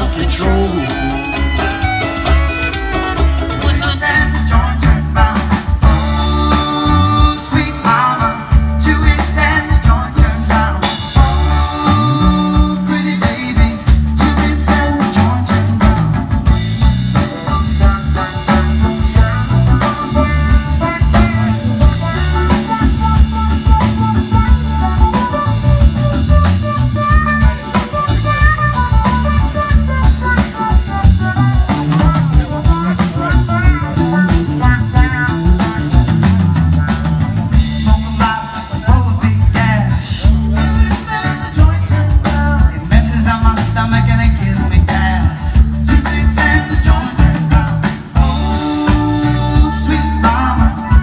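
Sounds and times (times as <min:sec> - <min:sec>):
acoustic and electric guitars: 0:00.0 - 0:51.0
drum kit: 0:00.0 - 0:51.0
lead melody line: 0:00.0 - 0:51.0.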